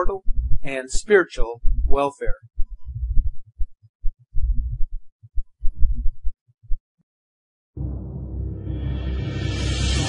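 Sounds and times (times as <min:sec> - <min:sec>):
deep low thuds: 0:00.0 - 0:00.6, 0:01.6 - 0:06.3.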